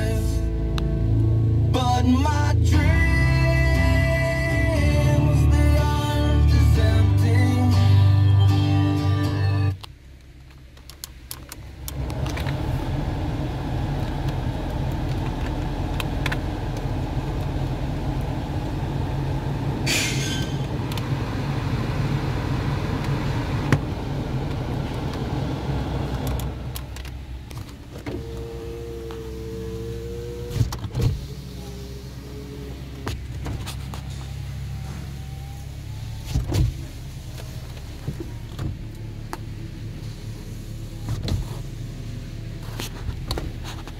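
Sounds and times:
car blower fan blowing: 10.9 - 43.9.

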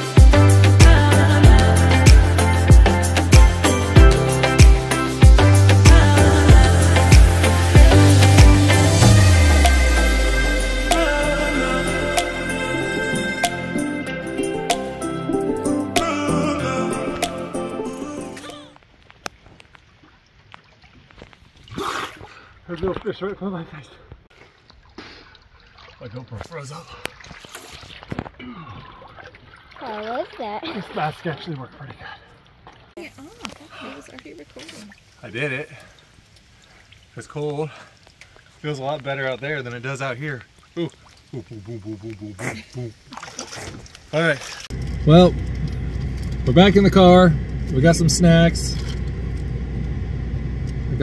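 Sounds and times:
background music: 0.0 - 18.7
water splash: 19.3 - 22.5, 24.4 - 31.9, 32.6 - 46.5, 48.6 - 49.4
water dripping and clicking: 24.6 - 30.6, 31.3 - 46.6.

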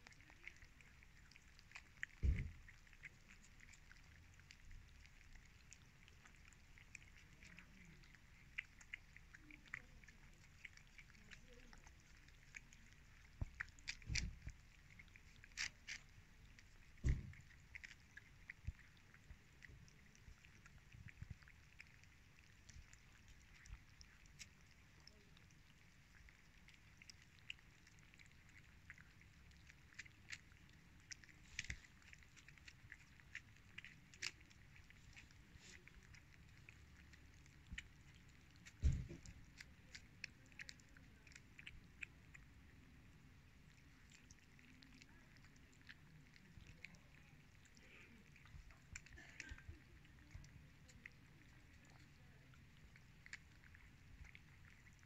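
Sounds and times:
cats chewing wet food: 0.0 - 55.0.

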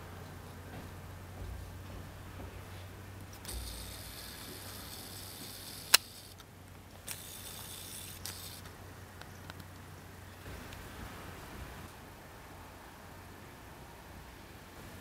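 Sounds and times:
steady low hum: 0.0 - 15.0
camera zoom motor whirring: 3.4 - 6.4, 7.0 - 8.7
sharp clicks: 3.4 - 9.8.

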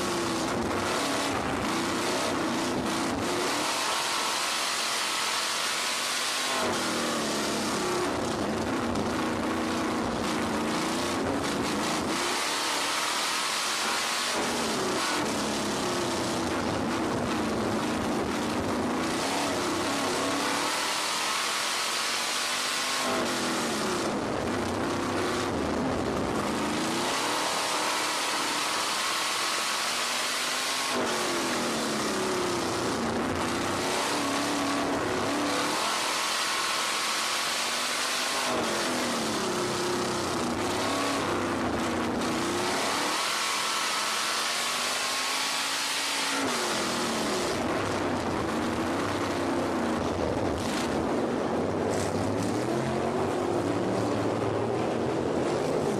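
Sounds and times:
race car engine revving: 0.0 - 55.9.

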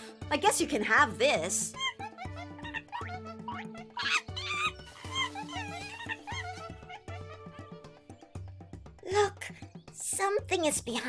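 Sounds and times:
cartoon monkeys chattering: 1.6 - 7.4.

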